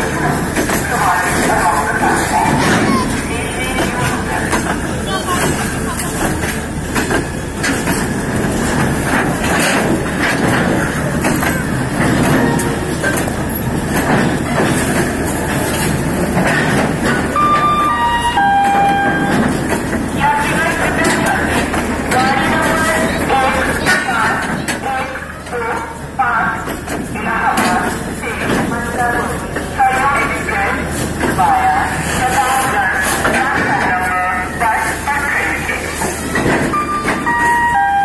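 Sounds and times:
crowd chatter: 0:00.0 - 0:38.0
rail noise: 0:00.0 - 0:38.0.

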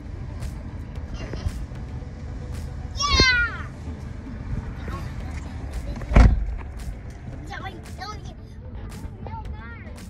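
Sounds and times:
car cabin rumble: 0:00.0 - 0:09.8
child squealing: 0:03.0 - 0:03.7.

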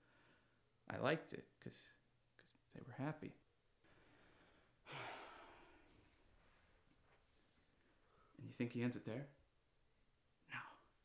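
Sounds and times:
person sighing: 0:04.8 - 0:05.9.

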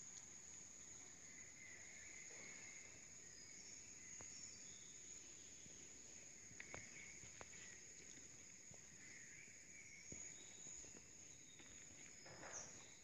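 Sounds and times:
steady high hiss: 0:00.0 - 0:10.3.

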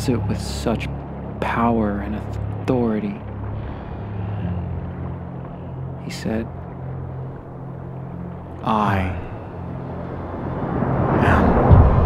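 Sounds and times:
cinematic film score drone: 0:00.0 - 0:12.0
low rumbling swell: 0:00.0 - 0:12.0
person speaking: 0:08.6 - 0:09.4.

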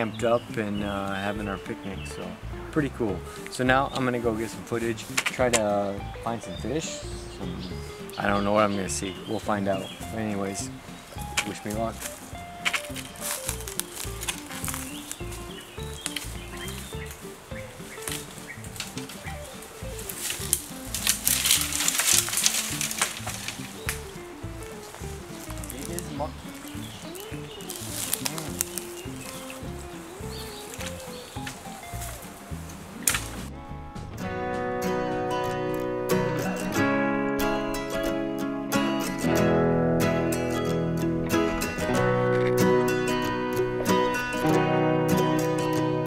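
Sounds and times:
pushing through dry undergrowth: 0:00.0 - 0:33.7
guitar music: 0:00.0 - 0:46.0
footsteps: 0:06.9 - 0:34.5.

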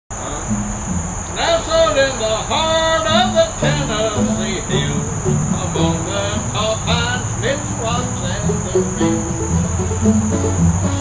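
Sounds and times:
crickets chirring: 0:00.1 - 0:11.0
man singing: 0:01.4 - 0:09.4
low bass notes: 0:03.6 - 0:11.0.

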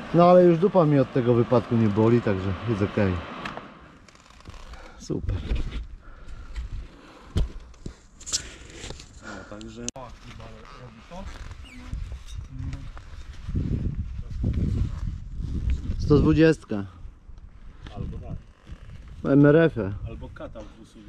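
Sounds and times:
camera handling knocks and rumbling: 0:05.4 - 0:08.0.

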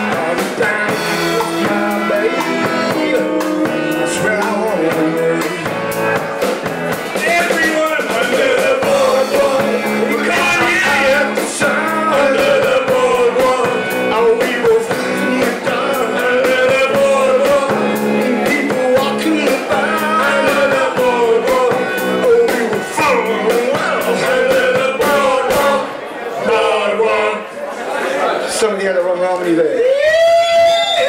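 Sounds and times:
live rock band playing: 0:00.0 - 0:26.6.

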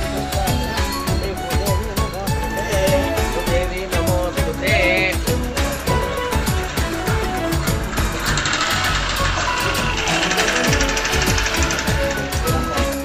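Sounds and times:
fast festival drumming: 0:00.0 - 0:13.0.

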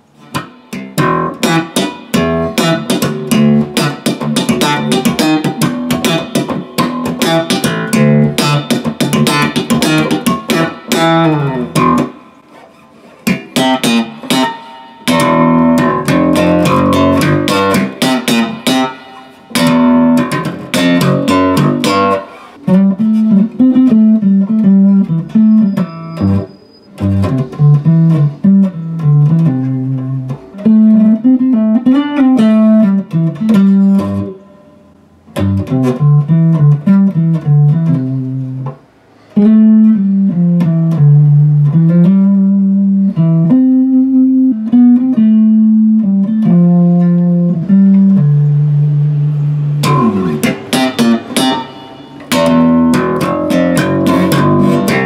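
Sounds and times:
bass guitar fingerstyle notes: 0:00.0 - 0:55.0
bass guitar slapped and popped: 0:00.3 - 0:12.2, 0:13.2 - 0:25.6, 0:27.1 - 0:34.3, 0:35.4 - 0:38.8, 0:44.6 - 0:51.7, 0:52.3 - 0:55.0.

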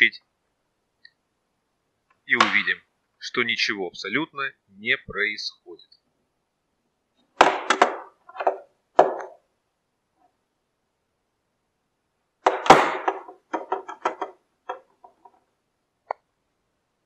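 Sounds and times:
plastic case knocking on wooden desk: 0:07.4 - 0:09.4, 0:12.5 - 0:14.8
plastic clatter: 0:07.4 - 0:09.4, 0:12.5 - 0:15.4.

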